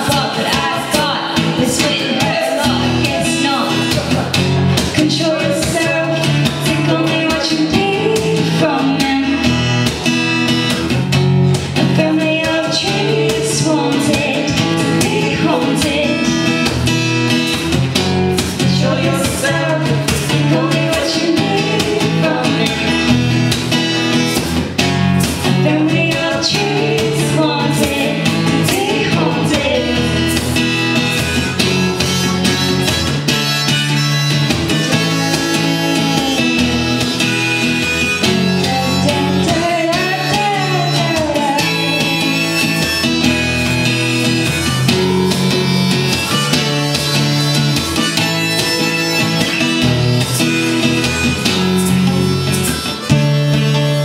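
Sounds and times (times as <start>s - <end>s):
person singing: 0.0s - 9.5s, 11.8s - 16.7s, 18.6s - 23.3s, 25.5s - 30.6s, 33.3s - 54.0s
acoustic guitar strumming: 0.0s - 54.0s.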